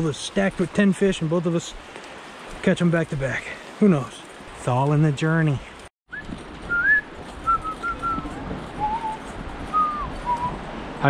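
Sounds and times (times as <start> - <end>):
stream rushing: 0.0 - 11.0
person whistling a tune: 6.1 - 8.2, 8.8 - 10.5.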